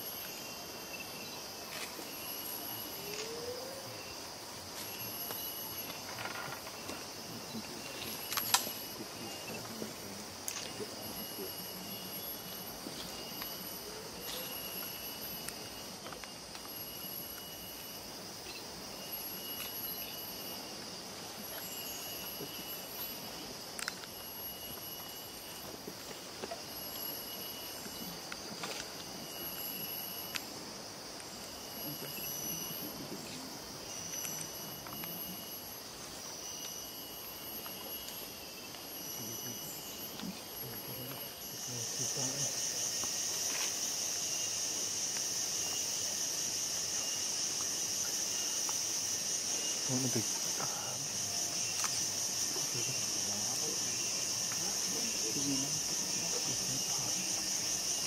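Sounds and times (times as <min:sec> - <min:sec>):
high-pitched insect trills: 0:00.0 - 0:58.0
insect chorus buzzing: 0:00.0 - 0:58.0.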